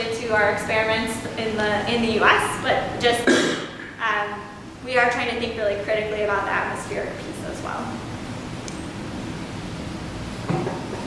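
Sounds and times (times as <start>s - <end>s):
lecture hall room noise: 0.0s - 11.0s.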